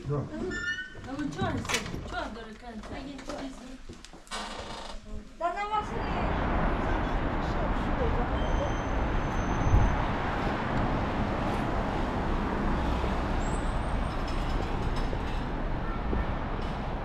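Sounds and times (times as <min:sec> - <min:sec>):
passing vehicles: 0:05.6 - 0:17.0.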